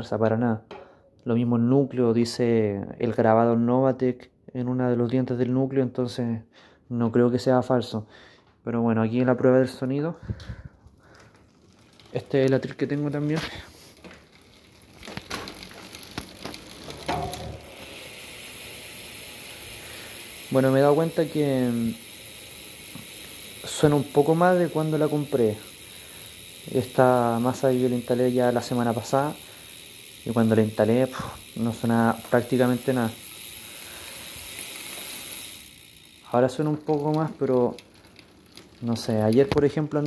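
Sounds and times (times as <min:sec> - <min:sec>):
bicycle freehub buzzing: 0:10.2 - 0:40.0.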